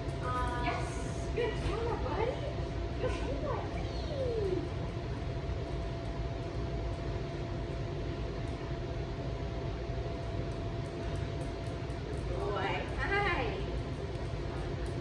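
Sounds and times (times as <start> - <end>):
faint constant hum tone: 0.0 - 15.0
low room rumble: 0.0 - 15.0.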